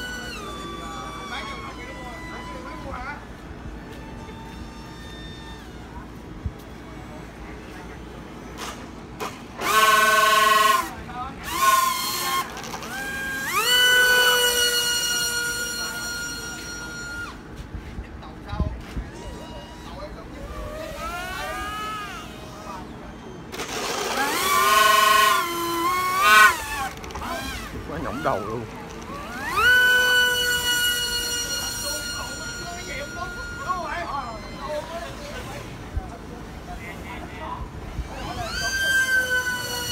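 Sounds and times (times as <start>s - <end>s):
electric motor and propeller whine: 0.0s - 39.9s.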